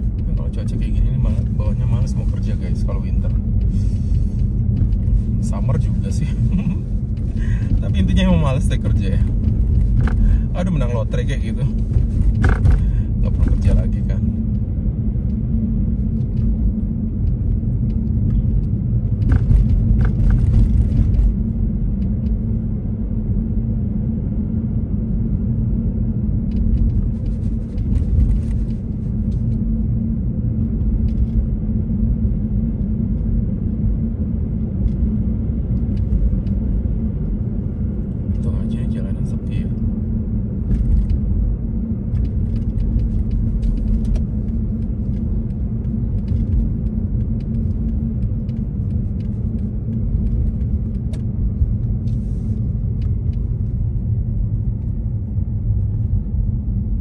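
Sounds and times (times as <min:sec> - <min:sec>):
car rumbling on snowy road: 0:00.0 - 0:57.0.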